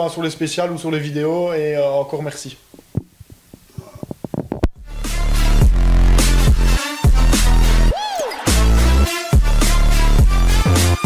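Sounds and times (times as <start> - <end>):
electronic music: 4.8 - 11.0.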